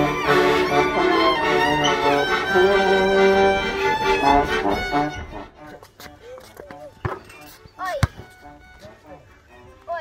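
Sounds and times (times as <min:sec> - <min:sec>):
basketball bouncing on asphalt: 0:06.0 - 0:08.4.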